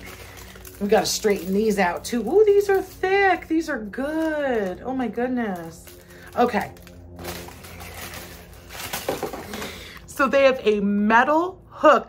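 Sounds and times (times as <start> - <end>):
plastic strips rustling and clicking: 0.0 - 3.2, 5.5 - 10.1.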